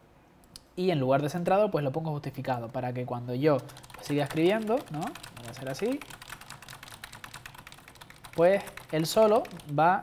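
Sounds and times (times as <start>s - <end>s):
fast typing on keyboard: 2.5s - 9.9s.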